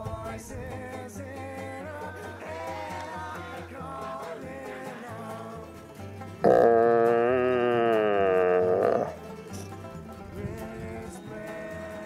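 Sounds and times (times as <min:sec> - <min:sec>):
country music with banjo and guitar: 0:00.0 - 0:12.0
stag roaring: 0:06.4 - 0:09.2.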